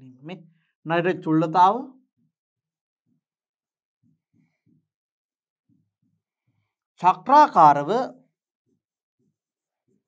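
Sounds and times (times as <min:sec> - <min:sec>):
stylus tapping and scratching tablet: 0:07.9 - 0:10.0.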